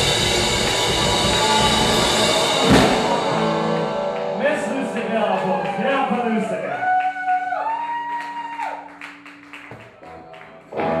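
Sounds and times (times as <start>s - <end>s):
guitar note bending upward: 0.0s - 6.5s
live rock band: 0.0s - 6.5s, 8.9s - 11.0s.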